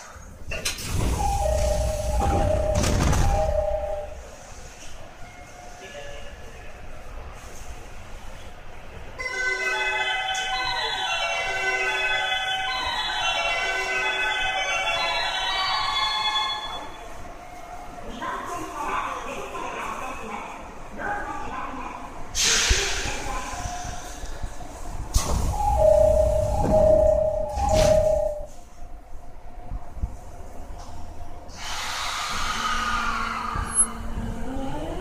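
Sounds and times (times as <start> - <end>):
dull train rolling noise: 0.0 - 35.0
train inverter whining: 31.5 - 35.0.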